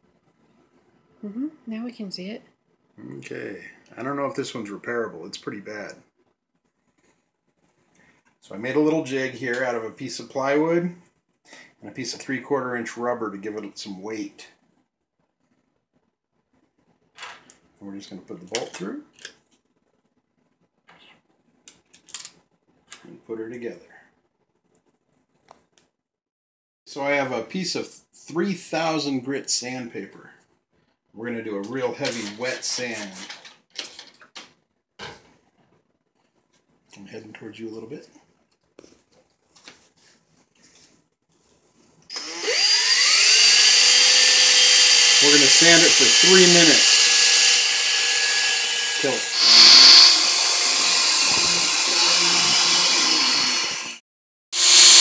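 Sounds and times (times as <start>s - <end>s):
cordless drill motor whir: 42.1s - 54.0s, 54.6s - 55.0s.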